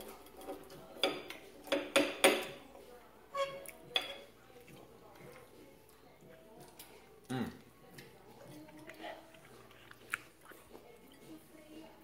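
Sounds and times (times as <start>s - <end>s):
cutlery clinking on ceramic plates: 3.4s - 4.3s.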